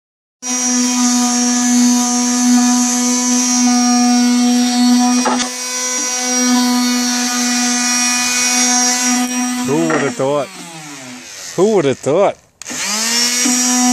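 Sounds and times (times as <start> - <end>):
orbital sander motor whine: 0.4 - 13.9.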